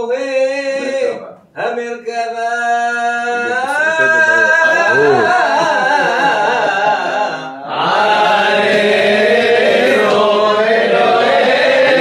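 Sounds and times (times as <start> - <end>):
men chanting in unison: 0.0 - 12.0.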